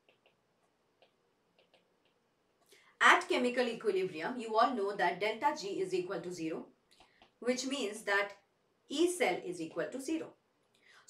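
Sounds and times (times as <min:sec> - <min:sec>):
stylus tapping on tablet screen: 0:00.0 - 0:02.3.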